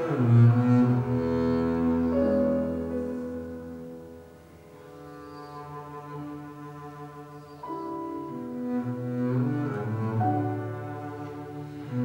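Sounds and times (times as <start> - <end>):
double bass bowed note: 0.0 - 12.0
piano accompaniment: 0.0 - 12.0.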